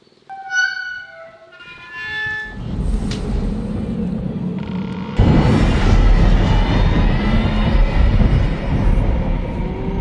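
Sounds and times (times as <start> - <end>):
dense low rumble: 2.6 - 10.0.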